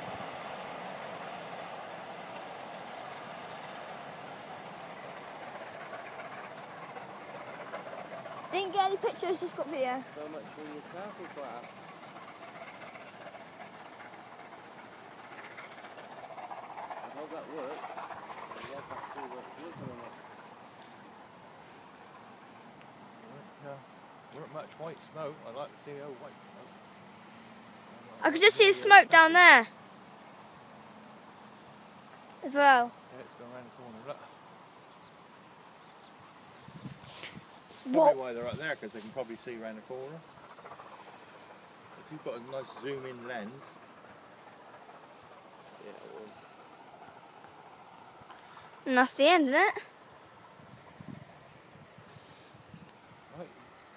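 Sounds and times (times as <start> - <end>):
distant steam train rumble: 0.0 - 53.9
faint background noise: 0.0 - 53.9
person speaking: 28.2 - 29.7, 37.8 - 38.4.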